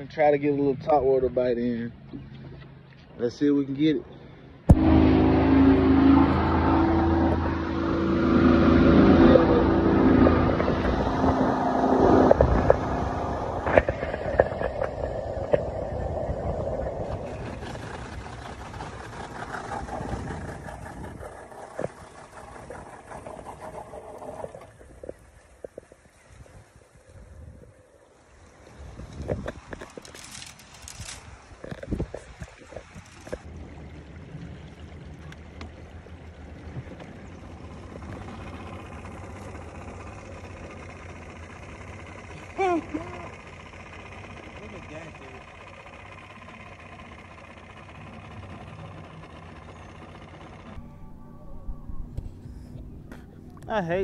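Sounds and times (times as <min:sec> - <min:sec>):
motorboat engine running: 0:00.0 - 0:54.0.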